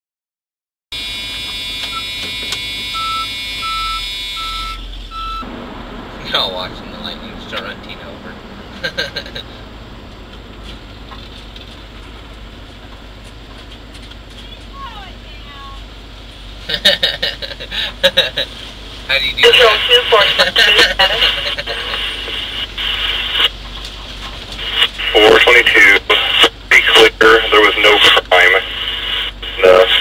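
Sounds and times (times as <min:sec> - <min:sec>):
engine and road noise: 0:00.9 - 0:30.0
short electronic beeps: 0:01.0 - 0:05.5
steady high whine: 0:01.0 - 0:30.0
two-way radio chatter: 0:06.2 - 0:09.6, 0:14.6 - 0:15.8, 0:19.1 - 0:23.5, 0:24.5 - 0:30.0.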